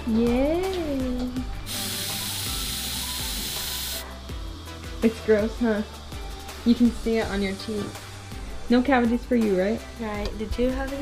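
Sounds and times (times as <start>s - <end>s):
background music with bass: 0.0s - 11.0s
air spraying hiss: 1.7s - 4.0s.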